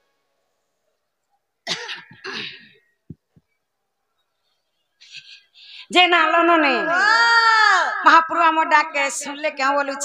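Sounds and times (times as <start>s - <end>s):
person clearing throat: 1.6s - 2.8s.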